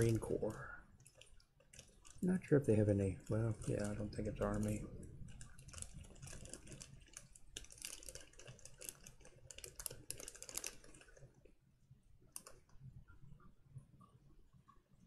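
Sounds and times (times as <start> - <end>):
plastic packaging crackling: 0.0 - 11.6, 12.3 - 12.8.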